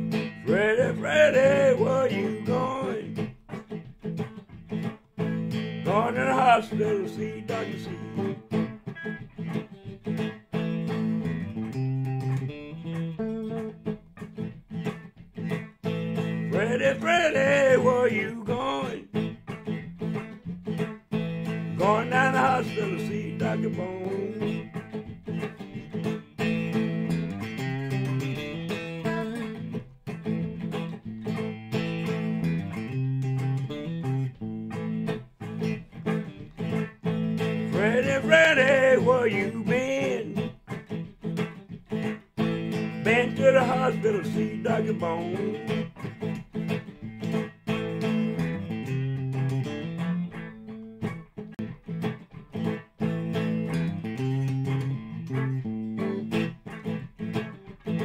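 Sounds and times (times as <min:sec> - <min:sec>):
bass guitar riff: 0:00.0 - 0:58.0
electric guitar lead: 0:00.0 - 0:58.0.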